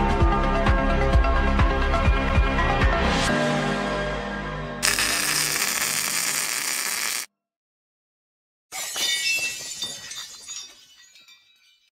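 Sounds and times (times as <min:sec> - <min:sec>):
glass shattering: 0:08.7 - 0:11.9.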